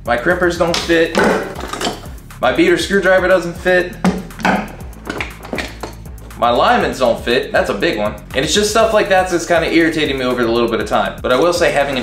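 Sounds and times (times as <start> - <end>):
background music: 0.0 - 12.0
metal hand tools clinking: 0.7 - 2.2.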